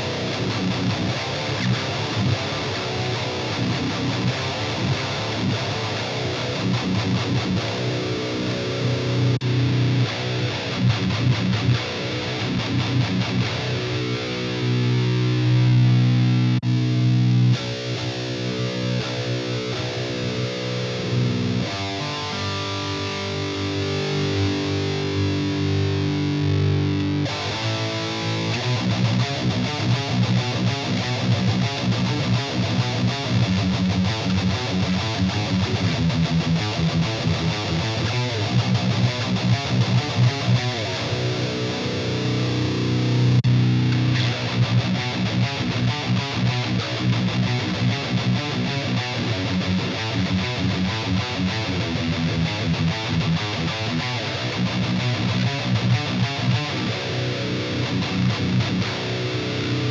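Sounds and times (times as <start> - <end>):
distorted electric guitar: 0.0 - 59.9.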